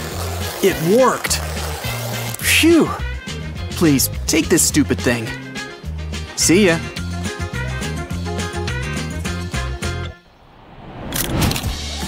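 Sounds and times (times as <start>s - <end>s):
background music: 0.0s - 10.4s.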